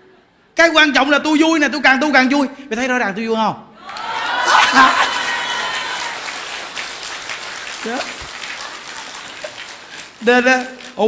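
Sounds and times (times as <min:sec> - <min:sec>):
audience applause: 0:03.8 - 0:11.0.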